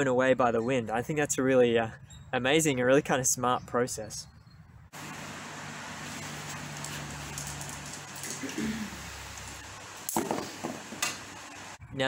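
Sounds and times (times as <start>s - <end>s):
electric fan running: 5.0s - 11.8s.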